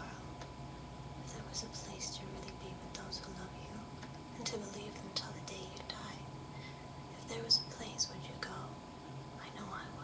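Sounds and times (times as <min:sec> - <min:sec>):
faint electrical whine: 0:00.0 - 0:10.0
woman whispering softly: 0:01.3 - 0:06.3, 0:07.2 - 0:08.8, 0:09.4 - 0:10.0.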